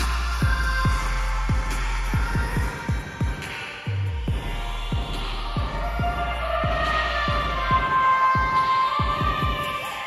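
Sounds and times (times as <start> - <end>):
low bass: 0.0 - 2.8, 3.9 - 7.8
deep pitch-dropping kick drums: 0.0 - 3.4, 4.1 - 9.7
electronic dance music: 0.0 - 10.0.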